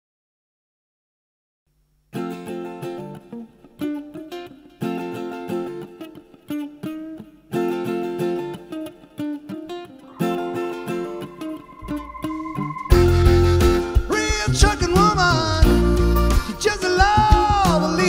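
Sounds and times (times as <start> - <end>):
mandolin picking chords: 2.4 - 16.2.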